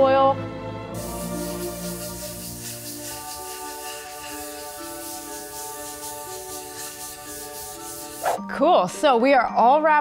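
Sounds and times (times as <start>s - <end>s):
background music with held notes: 0.0s - 10.0s
cloth pad rubbing wooden board: 1.0s - 8.4s.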